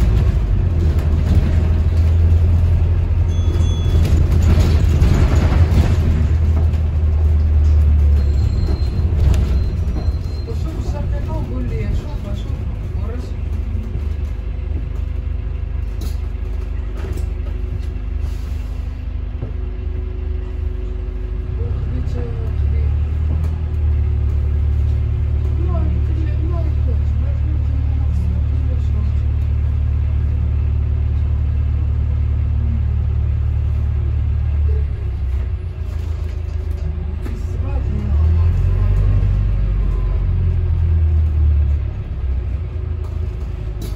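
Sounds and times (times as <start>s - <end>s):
bus engine droning: 0.0s - 43.9s.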